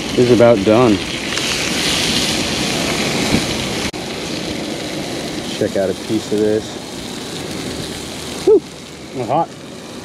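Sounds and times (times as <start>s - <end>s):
fish frying in a skillet: 0.0s - 10.0s
wind rumbling on microphone: 0.0s - 10.0s.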